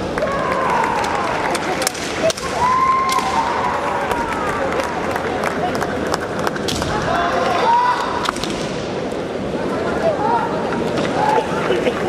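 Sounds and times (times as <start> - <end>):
bamboo swords clacking: 1.8 - 3.6, 8.2 - 8.9.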